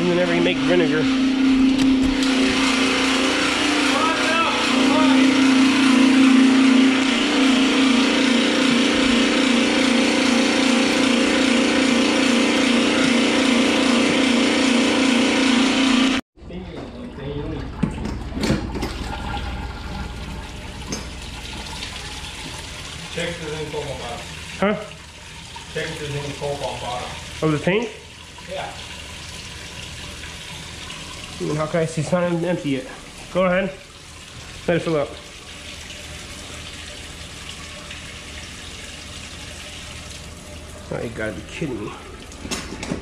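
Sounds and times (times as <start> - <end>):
electric pump humming: 0.0 - 43.0
liquid pouring into plastic tub: 17.4 - 43.0.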